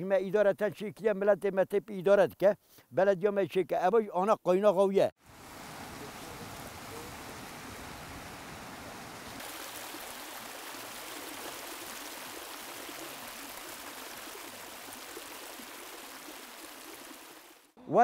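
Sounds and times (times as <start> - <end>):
hot spring water bubbling: 5.2 - 17.8.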